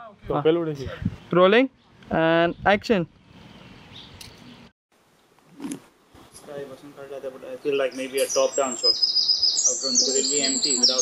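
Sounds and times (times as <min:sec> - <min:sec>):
bird chirp: 0:01.1 - 0:04.7, 0:07.6 - 0:11.0
background hiss: 0:04.9 - 0:11.0.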